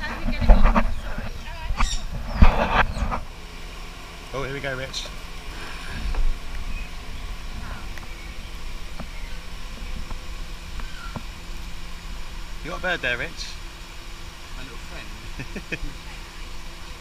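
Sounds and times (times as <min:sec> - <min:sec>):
steady low rumble: 0:00.0 - 0:17.0
faint bird chirps: 0:00.9 - 0:03.2, 0:05.7 - 0:10.1, 0:10.7 - 0:11.2.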